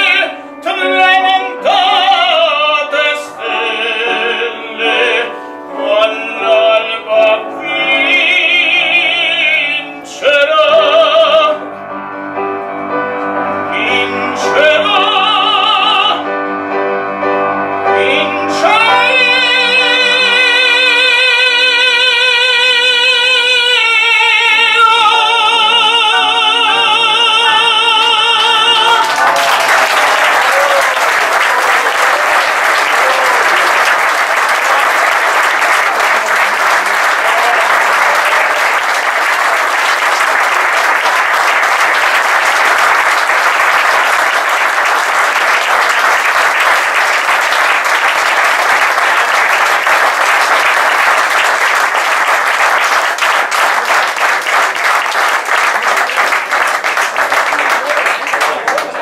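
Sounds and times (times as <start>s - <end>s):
audience applauding: 28.7s - 59.0s.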